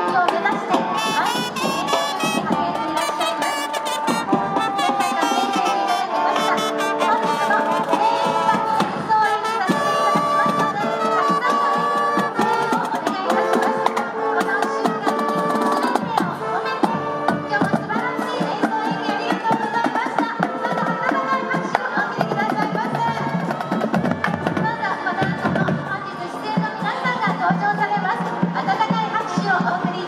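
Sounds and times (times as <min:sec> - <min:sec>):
brass melody: 0:00.0 - 0:25.8
snare drums: 0:00.0 - 0:25.9.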